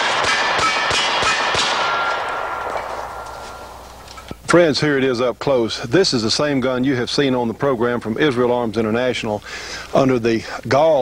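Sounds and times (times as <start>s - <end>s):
pistol shots echoing: 0.0s - 4.4s.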